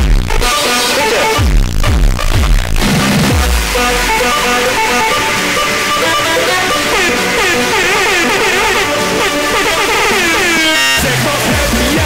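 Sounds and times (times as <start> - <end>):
heavy kick drums: 0.0 - 5.7, 11.0 - 12.0
distorted synth line: 0.0 - 12.0.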